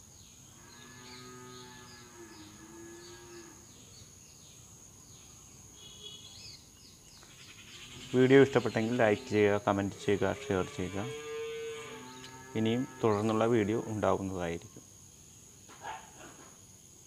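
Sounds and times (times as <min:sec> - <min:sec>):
cow mooing faintly: 0:07.8 - 0:14.1.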